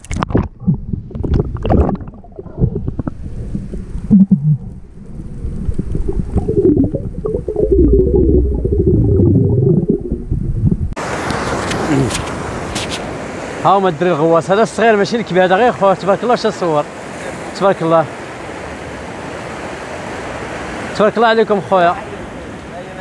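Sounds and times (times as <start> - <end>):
underwater bubbling: 0.0 - 11.0
underwater rumbling: 0.0 - 11.0
wind: 0.0 - 23.0
waves: 11.0 - 23.0.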